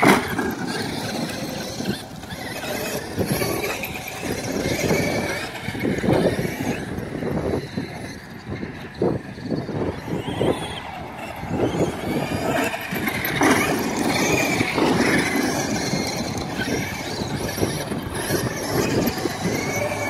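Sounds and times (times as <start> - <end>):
electric motors whining: 0.0 - 20.0
tyres churning dirt: 0.0 - 20.0.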